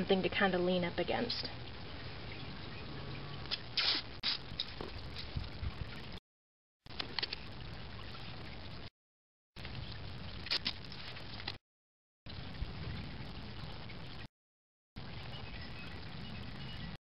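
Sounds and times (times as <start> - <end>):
masking tape tearing: 3.5 - 4.4, 10.5 - 10.8.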